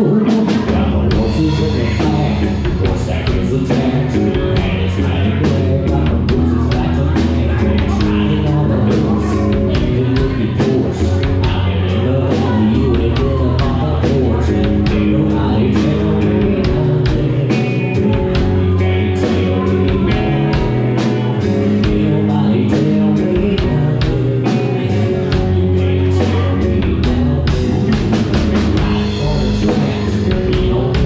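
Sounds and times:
rock band playing: 0.0s - 31.0s.

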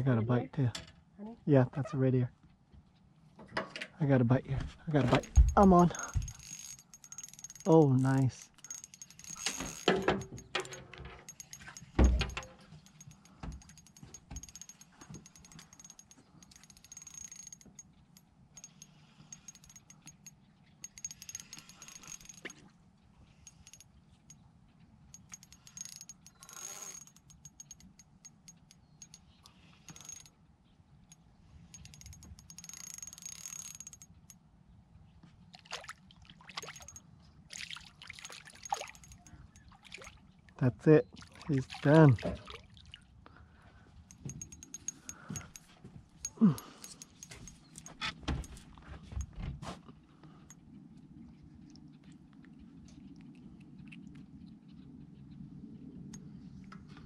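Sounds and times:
fishing reel whining: 5.2s - 22.7s, 23.4s - 24.4s, 25.1s - 30.4s, 31.1s - 34.4s, 38.2s - 39.6s, 44.1s - 48.1s.

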